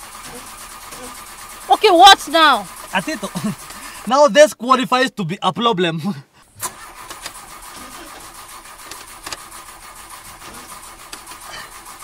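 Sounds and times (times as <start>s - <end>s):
van engine cranking: 0.0s - 4.2s, 6.3s - 12.0s.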